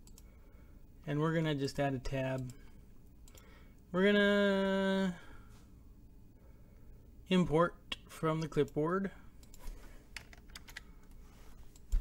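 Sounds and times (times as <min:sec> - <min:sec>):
computer keyboard keystrokes: 0:10.2 - 0:10.9.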